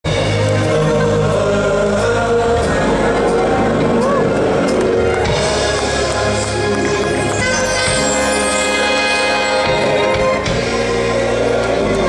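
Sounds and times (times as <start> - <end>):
live band music: 0.1 - 12.0
voices singing long notes: 0.1 - 12.0.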